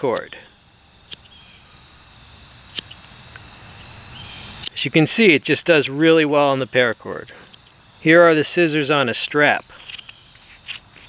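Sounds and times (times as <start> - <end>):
crickets chirping: 0.0 - 11.0
scissors snipping cord: 2.7 - 3.1.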